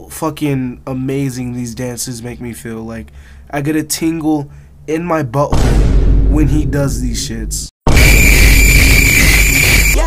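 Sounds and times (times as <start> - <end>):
distorted noise blast with whine: 7.9 - 10.0.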